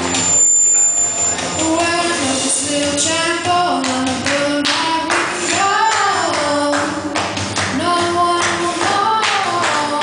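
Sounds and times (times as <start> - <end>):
thin high steady tone: 0.0 - 2.2
boy singing pop song: 1.6 - 10.0.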